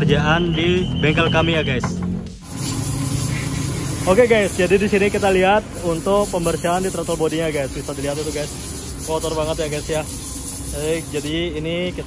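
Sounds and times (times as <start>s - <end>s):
aerosol spray hissing: 2.4s - 11.5s.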